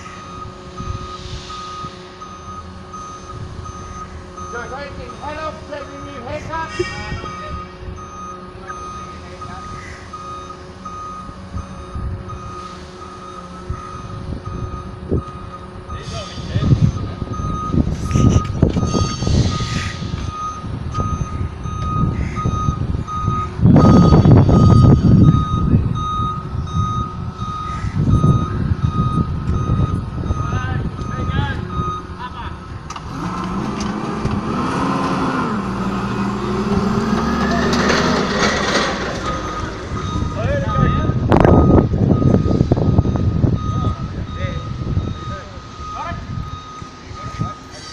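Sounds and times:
forklift back-up alarm beeping: 0:00.0 - 0:32.9, 0:36.4 - 0:47.9
forklift engine running: 0:00.0 - 0:47.9.

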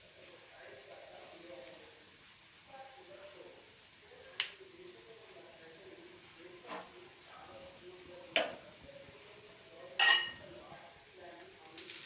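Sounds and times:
spoon tapping frying pan: 0:10.0 - 0:10.4.

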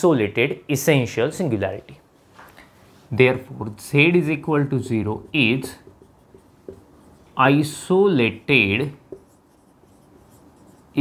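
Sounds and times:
marker writing on whiteboard: 0:04.7 - 0:07.8, 0:08.6 - 0:11.0
marker tip tapping board: 0:05.8 - 0:06.9, 0:09.1 - 0:09.4.

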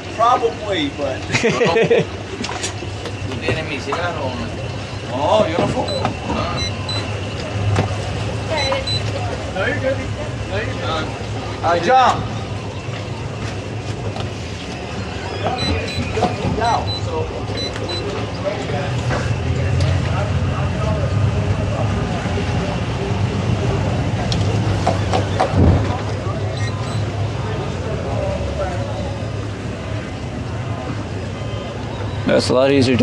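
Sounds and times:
boat engines running: 0:00.0 - 0:33.0.

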